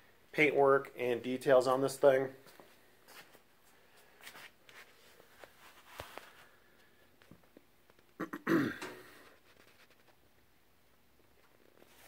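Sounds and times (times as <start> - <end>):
faint clicks and shuffles: 2.4 - 8.2, 9.1 - 12.0
man clearing his throat: 8.2 - 9.2.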